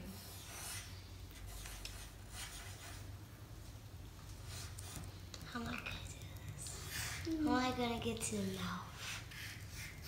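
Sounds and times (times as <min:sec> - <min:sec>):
pencils scratching on paper: 0:00.0 - 0:03.2, 0:04.4 - 0:10.0.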